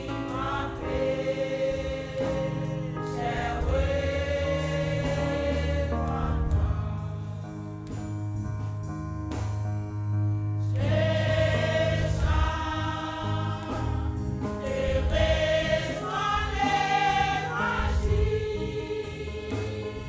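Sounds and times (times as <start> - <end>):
women's choir singing a hymn: 0.0 - 8.0, 10.6 - 20.0.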